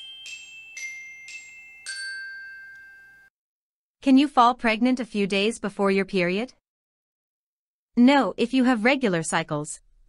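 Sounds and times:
bright chime note: 0.0 - 3.3.

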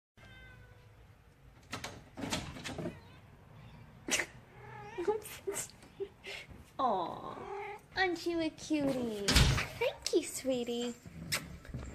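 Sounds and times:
door opening clatter: 1.6 - 3.0.

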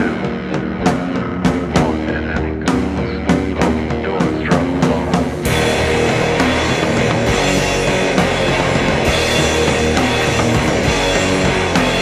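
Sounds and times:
instrumental rock music: 0.0 - 12.0.

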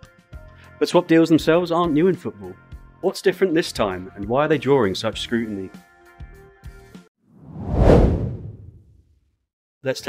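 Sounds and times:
whoosh sound effect: 7.4 - 8.9.

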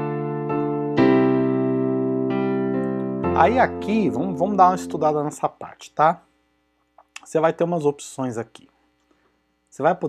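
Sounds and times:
digital piano chord and notes: 0.0 - 5.7.

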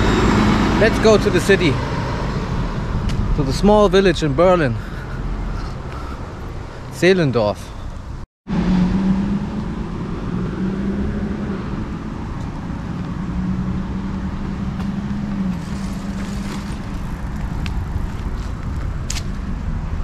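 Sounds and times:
vehicle engine running: 11.8 - 18.7.

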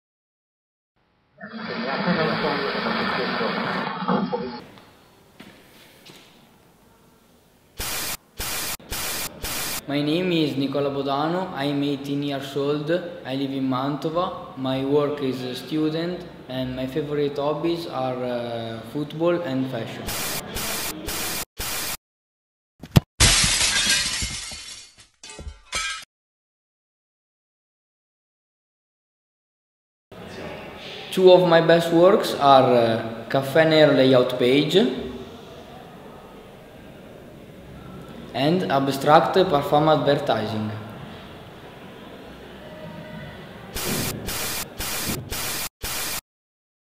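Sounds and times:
loud glitchy static hiss: 1.8 - 4.6, 7.8 - 9.9, 20.0 - 22.0, 43.8 - 46.2
glass cracking: 23.2 - 26.0
glass shattering: 23.2 - 26.1
glass pieces tinkling: 23.3 - 26.0.

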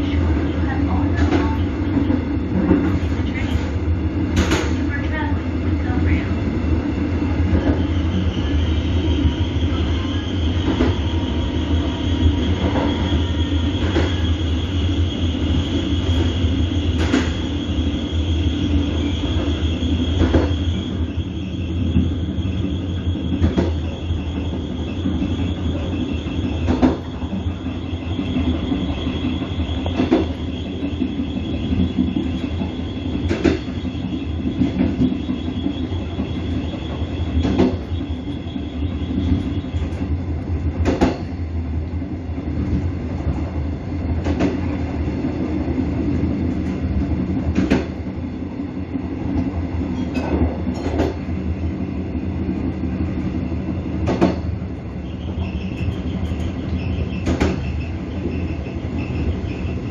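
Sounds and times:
train wheels rumbling on track: 0.0 - 59.9
thin high wheel squeal: 7.8 - 39.9, 55.0 - 59.9.

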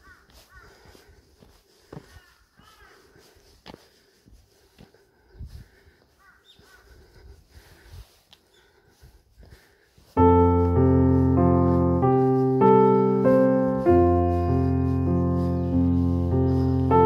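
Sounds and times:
bird calls: 0.0 - 1.2, 1.8 - 3.3, 5.1 - 7.8, 8.4 - 9.0, 15.0 - 17.0
footsteps on a paved path: 0.0 - 17.0
loud piano music: 10.2 - 17.0.

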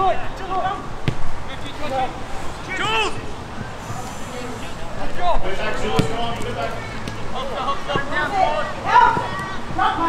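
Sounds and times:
players shouting: 0.0 - 10.0
boot kicking football: 1.0 - 1.4, 5.8 - 6.4.

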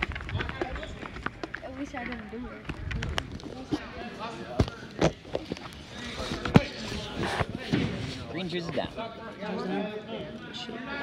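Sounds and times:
voices echoing in a gymnasium: 0.0 - 11.0.

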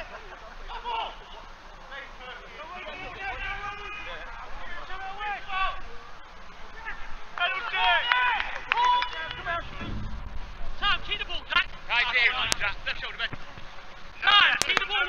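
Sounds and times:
footballers shouting: 0.0 - 13.3.

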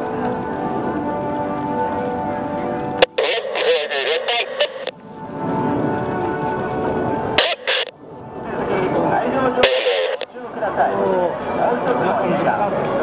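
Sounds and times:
music over public address: 0.0 - 13.0
voice over public address: 3.0 - 5.0, 7.4 - 7.9, 8.5 - 13.0.

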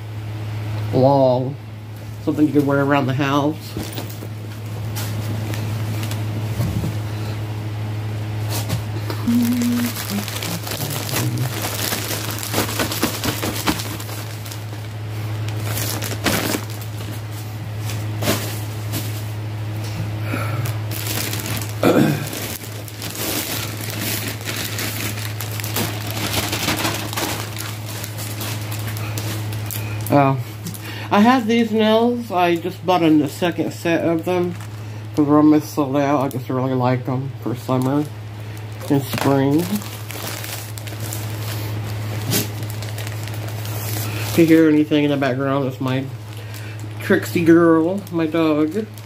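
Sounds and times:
steady low hum: 0.0 - 49.0
plastic packaging crinkling: 3.7 - 6.4, 9.2 - 19.3, 20.6 - 30.9, 31.9 - 34.8, 37.6 - 49.0
person clearing throat: 9.0 - 11.4, 21.8 - 22.4.

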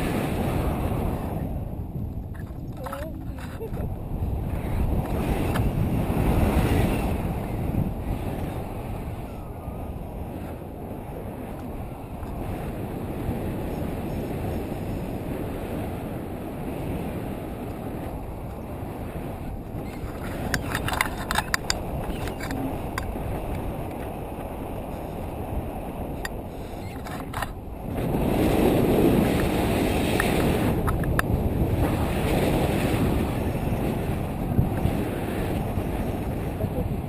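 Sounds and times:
wind buffeting microphone: 0.0 - 37.0
sharp clicks and rattles: 2.2 - 3.9, 19.8 - 24.1, 26.2 - 27.6.

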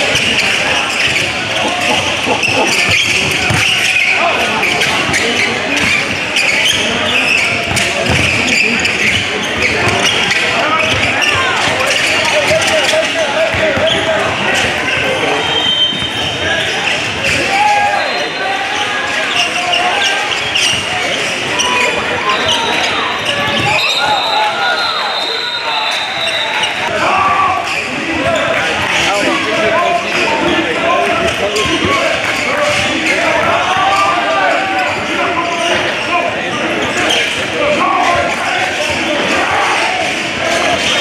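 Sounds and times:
echoing voices: 0.0 - 41.0.

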